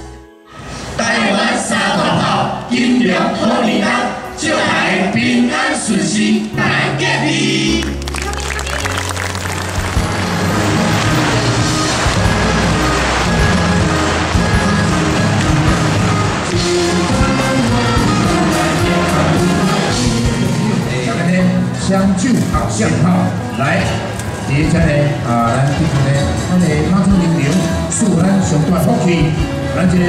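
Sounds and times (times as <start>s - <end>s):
group singing into microphones: 0.6s - 8.0s, 10.5s - 21.8s
backing music with bass line: 3.8s - 30.0s.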